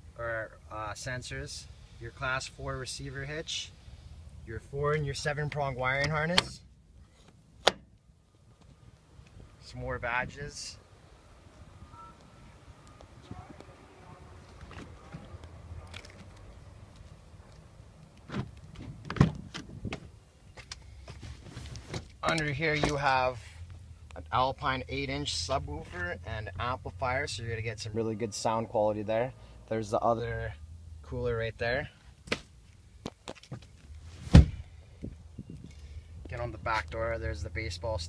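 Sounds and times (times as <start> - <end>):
truck door clunk: 7.6 - 7.9, 18.2 - 20.1, 34.2 - 34.6.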